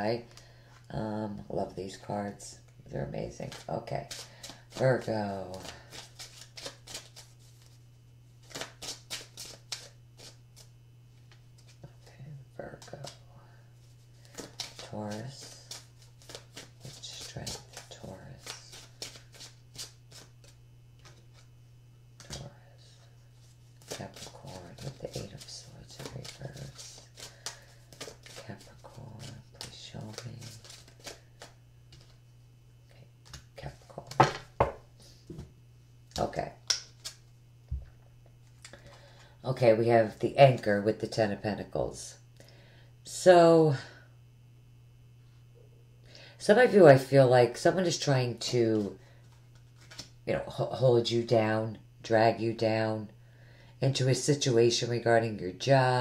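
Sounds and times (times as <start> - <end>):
cards being shuffled: 3.2 - 7.8, 8.4 - 11.9, 13.8 - 21.5, 23.4 - 32.2, 36.2 - 37.3, 48.4 - 50.2.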